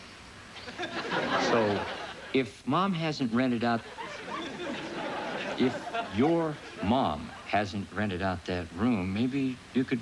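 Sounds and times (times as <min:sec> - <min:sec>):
studio audience laughing: 0:00.6 - 0:02.4, 0:03.8 - 0:07.5
man speaking dialogue: 0:01.4 - 0:03.9, 0:05.6 - 0:10.0.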